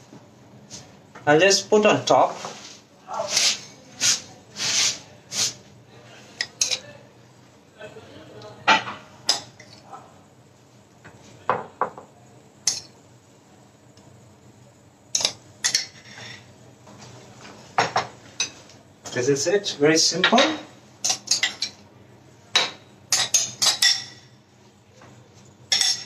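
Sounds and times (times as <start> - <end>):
metal spoon clinking on glass: 12.6 - 12.9, 21.0 - 21.8, 25.7 - 26.0.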